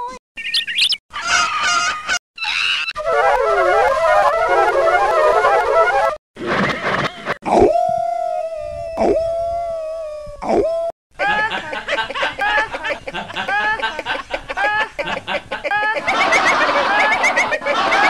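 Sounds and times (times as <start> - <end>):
garbled tape music snippets: 3.0 - 7.4.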